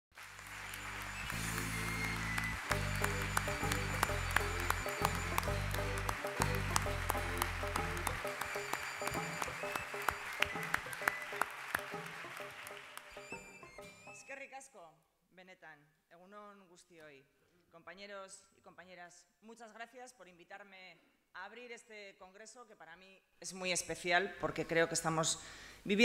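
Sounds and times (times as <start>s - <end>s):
audience clapping: 0.1s - 13.9s.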